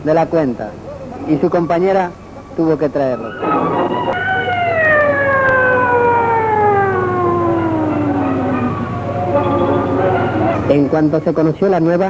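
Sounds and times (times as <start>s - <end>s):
siren winding down: 3.0s - 10.7s.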